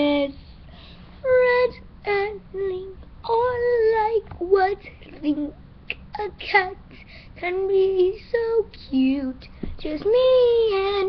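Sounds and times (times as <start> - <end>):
girl singing unaccompanied: 0.0 - 0.6, 1.2 - 11.0.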